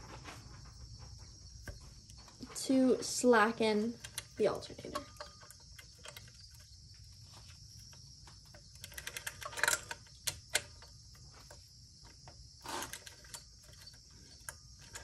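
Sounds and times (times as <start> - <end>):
hand tools clicking on metal: 3.9 - 6.7, 8.4 - 15.0.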